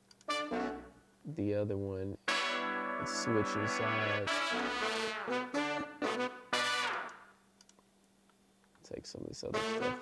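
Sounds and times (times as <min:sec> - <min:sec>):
funk horn section stabs: 0:02.3 - 0:07.2, 0:09.5 - 0:10.0.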